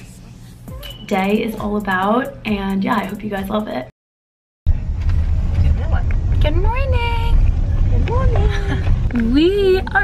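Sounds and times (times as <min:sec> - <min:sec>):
car cabin road rumble: 0:04.7 - 0:10.0.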